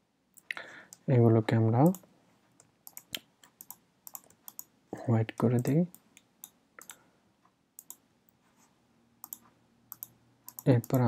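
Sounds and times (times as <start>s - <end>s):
keyboard and mouse clicking: 2.6s - 4.7s, 5.3s - 7.0s, 7.8s - 8.0s, 9.2s - 11.0s.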